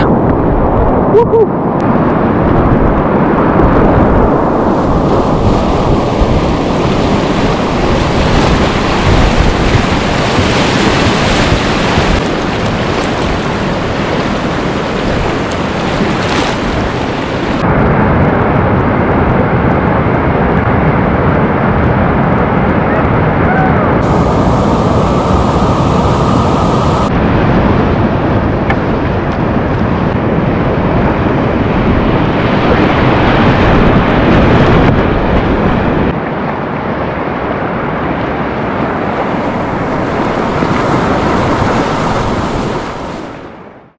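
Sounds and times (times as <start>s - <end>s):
wind buffeting microphone: 0.0s - 43.8s
river rapids rushing: 3.7s - 17.6s, 23.1s - 27.1s.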